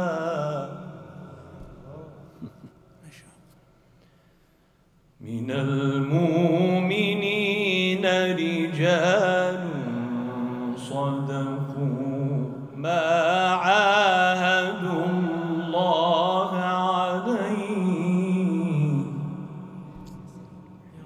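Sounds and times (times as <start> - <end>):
man chanting into microphone: 0.0 - 2.2, 5.2 - 21.0.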